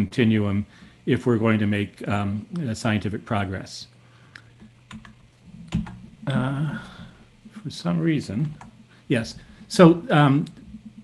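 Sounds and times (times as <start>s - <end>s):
faint steady hum: 0.0s - 11.0s
keyboard clicks: 4.4s - 6.1s.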